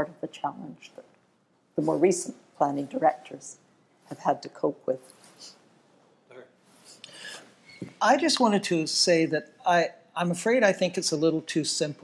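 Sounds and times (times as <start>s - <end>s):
faint rustling and rubbing: 4.9s - 8.0s
man speaking: 6.3s - 12.0s.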